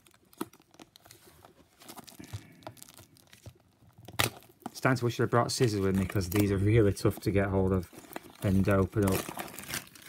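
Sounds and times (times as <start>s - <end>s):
plastic wrap crinkling and tearing: 0.0s - 10.0s.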